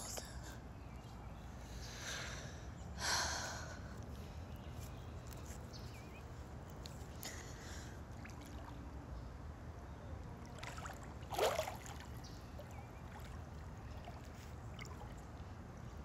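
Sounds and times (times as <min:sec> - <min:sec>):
pool water lapping: 0:06.7 - 0:09.5, 0:10.2 - 0:16.0.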